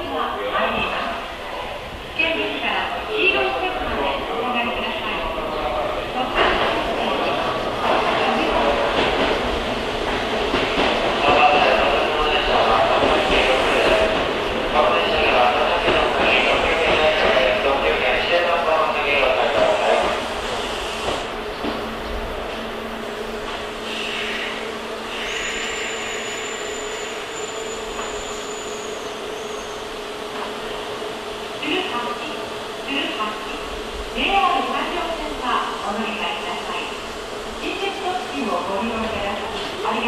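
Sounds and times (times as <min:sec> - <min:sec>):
train wheels rumbling on rails: 0:01.9 - 0:40.0
air hiss: 0:23.8 - 0:27.3.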